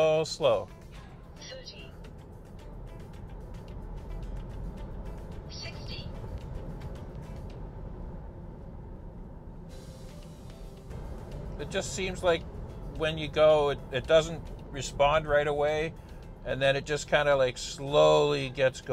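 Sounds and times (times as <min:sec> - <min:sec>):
road and tyre rumble in car cabin: 0:00.0 - 0:18.9.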